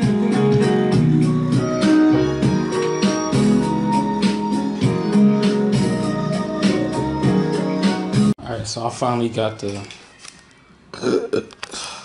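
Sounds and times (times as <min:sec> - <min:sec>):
man burping: 0:10.9 - 0:11.7.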